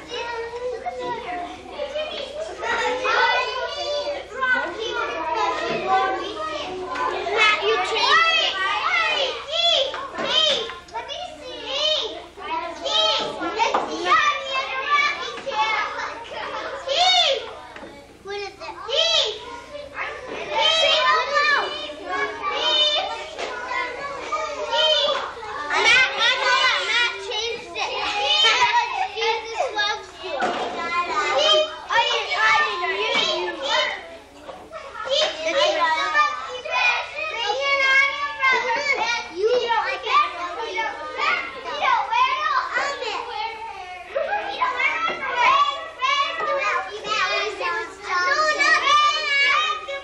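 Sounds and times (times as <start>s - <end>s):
children chattering: 0.0s - 50.0s.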